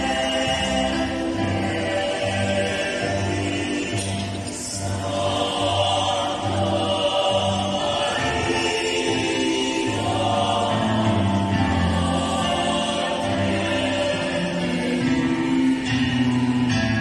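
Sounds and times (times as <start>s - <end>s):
mixed choir singing: 0.0s - 17.0s.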